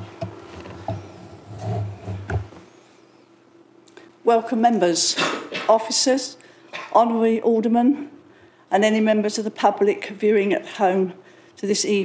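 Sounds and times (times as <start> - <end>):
rumbling movement on microphone: 0.0 - 2.6
faint electrical hum: 0.0 - 12.0.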